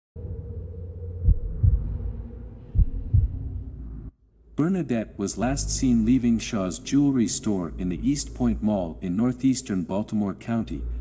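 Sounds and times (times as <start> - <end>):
steady low drone: 0.2 - 11.0
heartbeat thumps: 1.2 - 3.9.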